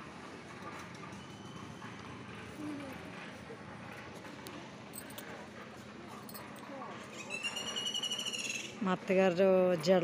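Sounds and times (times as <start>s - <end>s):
high-pitched animal call: 7.1s - 8.8s
woman's voice: 8.8s - 10.0s.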